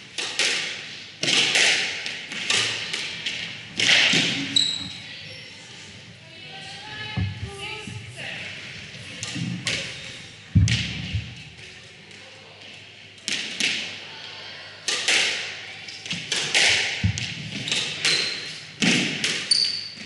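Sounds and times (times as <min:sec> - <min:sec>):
squash ball hitting rackets and walls: 0:00.1 - 0:04.6, 0:09.2 - 0:10.0, 0:10.6 - 0:11.5, 0:14.9 - 0:20.0.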